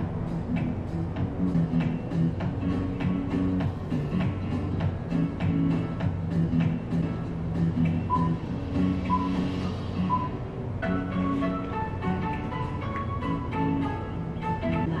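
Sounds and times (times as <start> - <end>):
instrumental background music: 0.0 - 15.0.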